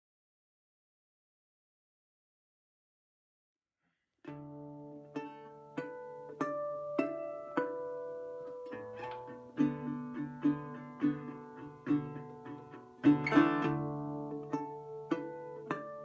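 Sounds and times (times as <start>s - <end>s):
fingerpicked resonator guitar: 4.3s - 16.0s.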